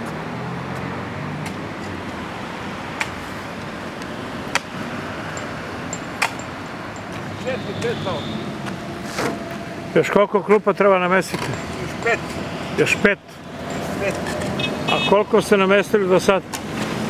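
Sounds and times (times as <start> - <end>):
sharp clicks or knocks: 4.0 - 7.3.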